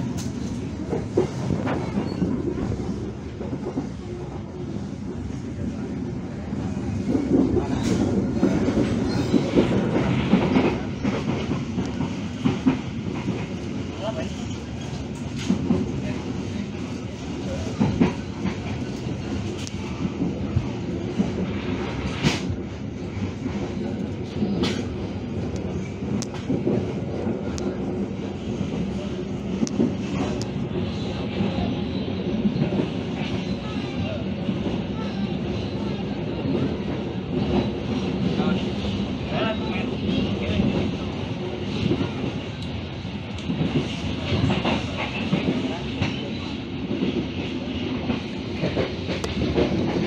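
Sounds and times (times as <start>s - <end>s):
train wheels rumbling on rails: 0.0s - 50.0s.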